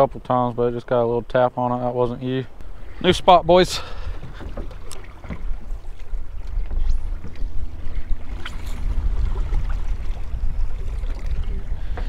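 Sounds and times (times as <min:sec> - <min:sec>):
wind buffeting microphone: 0:02.4 - 0:12.0.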